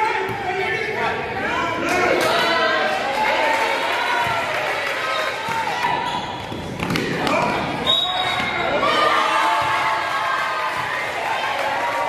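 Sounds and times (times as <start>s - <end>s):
voices in a gym: 0.0s - 12.0s
basketball bouncing on indoor court: 4.1s - 11.2s.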